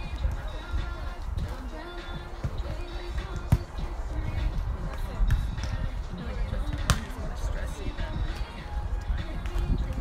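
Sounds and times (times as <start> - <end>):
volleyball being hit: 6.7 - 7.1.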